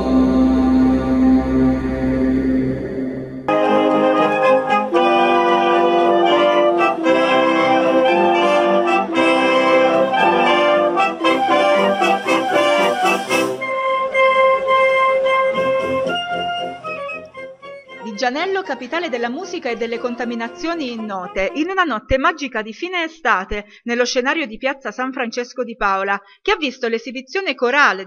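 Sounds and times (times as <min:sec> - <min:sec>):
wind band playing: 0:03.5 - 0:21.6.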